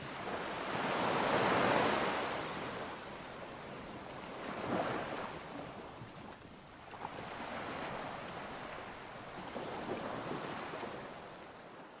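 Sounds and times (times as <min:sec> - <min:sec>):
ocean waves washing: 0:00.0 - 0:11.9.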